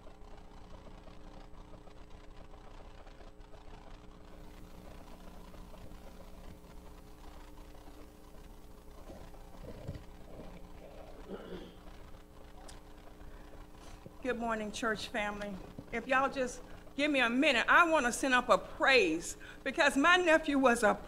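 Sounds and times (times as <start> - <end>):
electrical mains hum: 0.0 - 21.0
faint room noise: 0.0 - 21.0.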